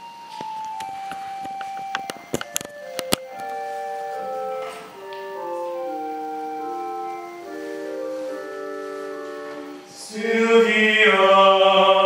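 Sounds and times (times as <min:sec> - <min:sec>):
organ playing held notes: 0:00.0 - 0:12.0
sharp clicks and knocks: 0:00.4 - 0:03.6.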